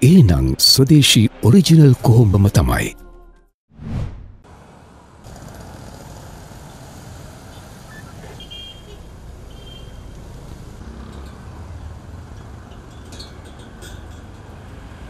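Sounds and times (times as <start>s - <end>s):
car engines and road noise: 4.4s - 15.0s.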